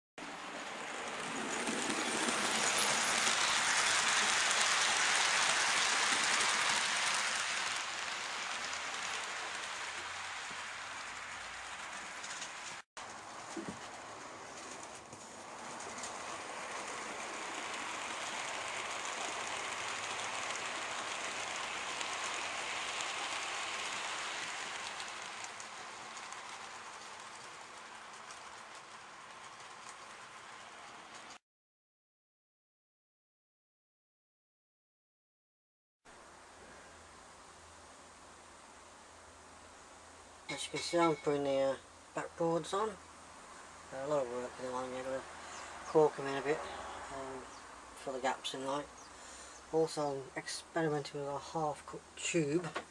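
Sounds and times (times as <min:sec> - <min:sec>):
model train running on track: 0:00.2 - 0:31.4, 0:39.7 - 0:52.9.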